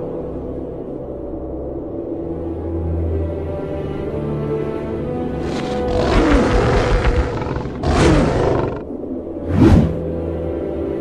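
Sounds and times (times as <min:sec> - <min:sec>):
background music: 0:00.0 - 0:11.0
deep rough monster roar: 0:05.4 - 0:08.9.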